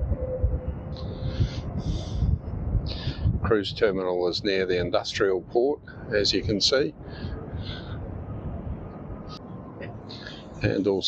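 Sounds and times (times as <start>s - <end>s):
wind buffeting microphone: 0.0s - 11.0s
person speaking: 9.8s - 11.0s.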